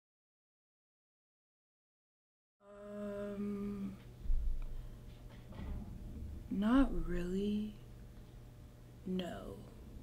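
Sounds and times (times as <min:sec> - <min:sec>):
girl humming: 0:02.6 - 0:04.1.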